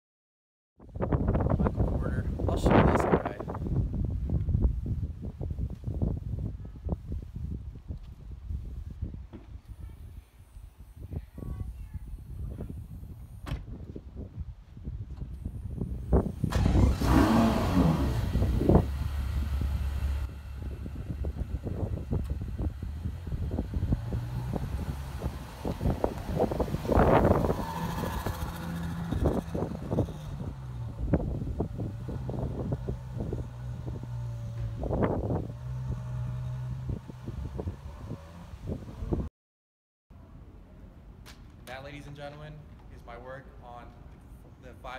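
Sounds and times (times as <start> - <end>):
car engine starting and idling: 15.4 - 38.5.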